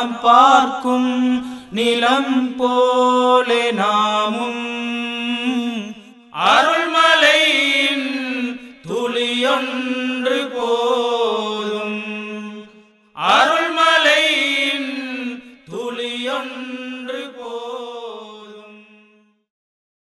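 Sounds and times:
devotional chant singing: 0:00.0 - 0:19.3.

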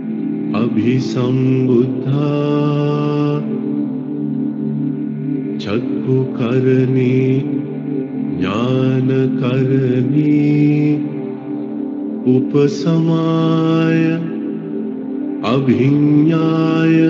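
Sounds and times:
steady low drone: 0:00.0 - 0:17.0.

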